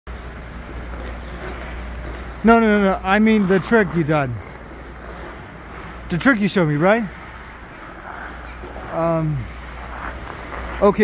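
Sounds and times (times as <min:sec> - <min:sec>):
ice rink low rumble and hiss: 0:00.1 - 0:11.0.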